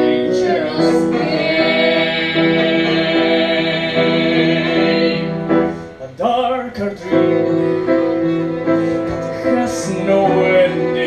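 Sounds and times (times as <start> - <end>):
person singing: 0.0 - 11.0
violin accompaniment: 0.0 - 11.0.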